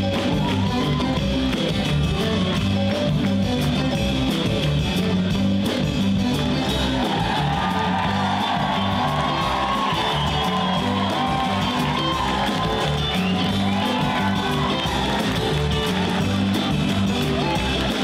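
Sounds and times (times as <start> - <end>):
audience clapping and cheering: 0.0 - 18.0
live rock band playing: 0.0 - 18.0.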